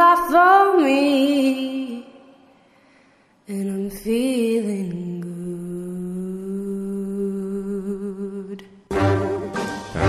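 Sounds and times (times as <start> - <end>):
song beat: 8.9 - 10.0.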